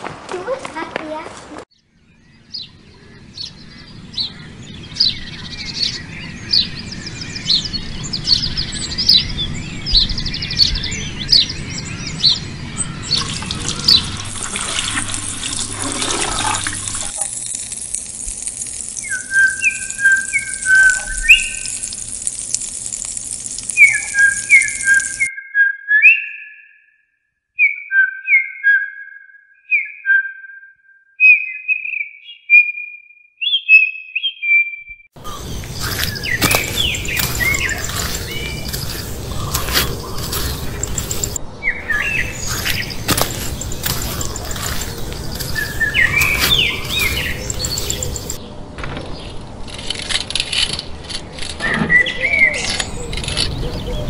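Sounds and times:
birds chirping: 0:00.3 - 0:25.3, 0:35.2 - 0:48.6, 0:51.9 - 0:54.0
outdoor background hiss: 0:11.6 - 0:25.3, 0:35.2 - 0:49.3
whistled bird notes: 0:19.0 - 0:22.0, 0:23.7 - 0:27.0, 0:27.6 - 0:48.4, 0:51.6 - 0:54.0.

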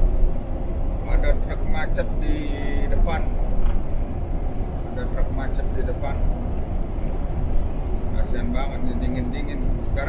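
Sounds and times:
truck engine and tyres rumbling: 0:00.0 - 0:10.0.

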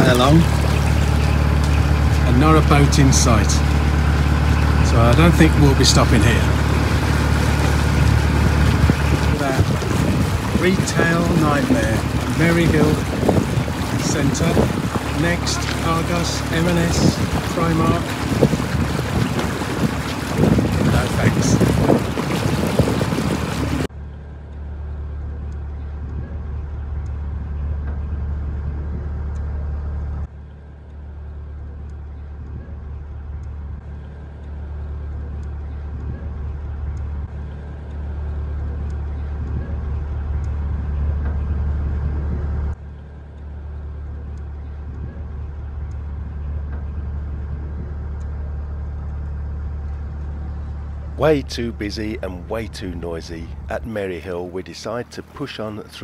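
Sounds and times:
diesel boat engine running: 0:00.0 - 0:56.0.

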